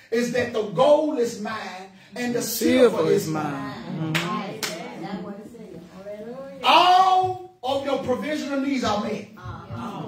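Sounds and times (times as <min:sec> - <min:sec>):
man talking: 0:00.0 - 0:03.6, 0:06.0 - 0:09.3.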